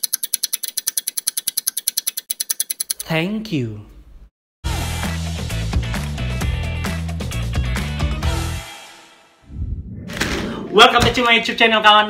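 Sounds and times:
rapid ticking clicks: 0.0s - 3.1s.

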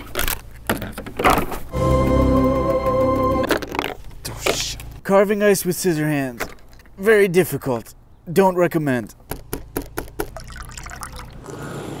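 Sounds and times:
liquid pouring into glass: 10.3s - 11.5s.

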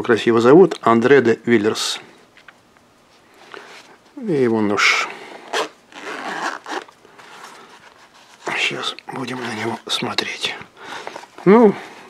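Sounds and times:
zipper pulled open: 5.4s - 7.7s
fabric case rustling: 5.4s - 9.9s.

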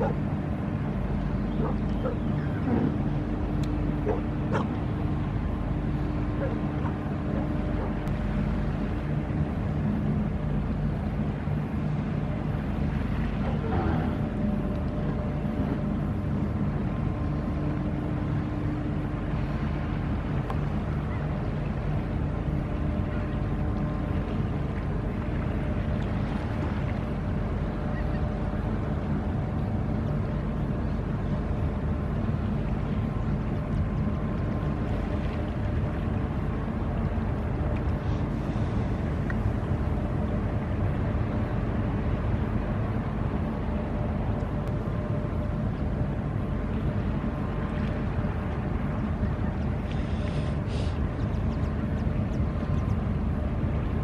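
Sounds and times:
ship diesel engine drone: 0.0s - 54.0s.

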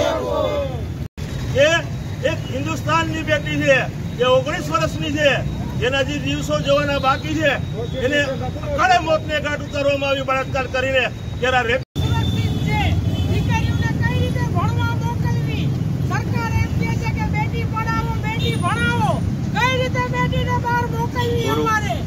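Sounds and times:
low rumble of street traffic: 0.0s - 22.0s
protesters' voices: 0.0s - 22.0s.

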